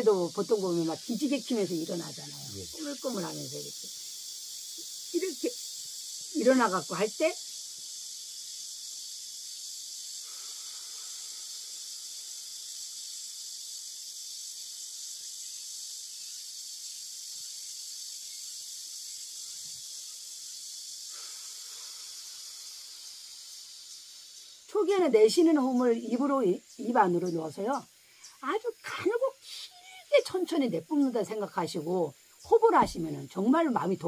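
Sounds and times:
steady high hiss: 0.0 - 34.0
slow deep breathing: 10.2 - 11.9, 21.1 - 22.8.

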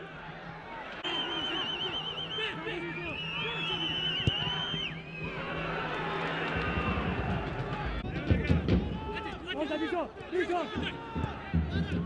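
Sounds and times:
footballers shouting: 0.0 - 12.0.

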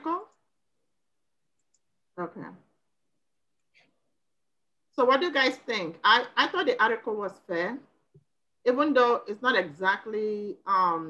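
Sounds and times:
woman's voice: 0.0 - 0.3, 2.2 - 2.6, 5.0 - 7.8, 8.7 - 11.0.

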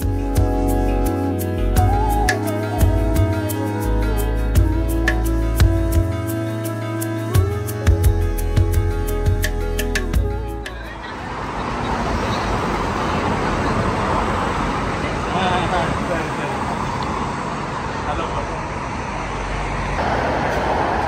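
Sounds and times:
cars passing: 9.6 - 21.0.

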